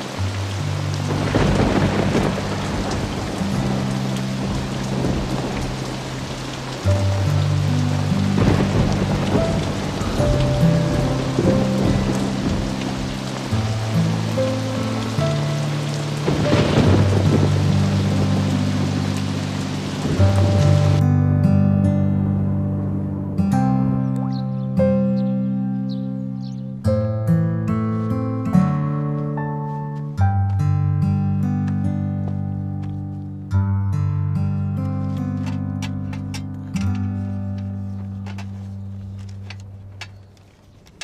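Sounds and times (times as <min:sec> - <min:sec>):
heavy rain pouring: 0:00.0 - 0:21.0, 0:34.9 - 0:40.2
low sustained orchestral chords: 0:00.0 - 0:27.7
thunder cracking and rumbling: 0:01.1 - 0:06.9, 0:07.6 - 0:15.1, 0:16.2 - 0:21.0.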